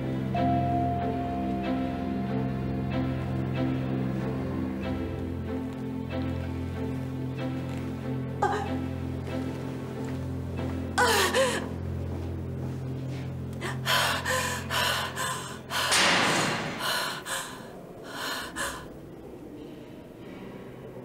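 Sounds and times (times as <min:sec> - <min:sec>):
low sustained music chord: 0:00.0 - 0:16.2
woman crying and gasping: 0:08.4 - 0:08.8, 0:11.0 - 0:11.8, 0:13.6 - 0:18.9.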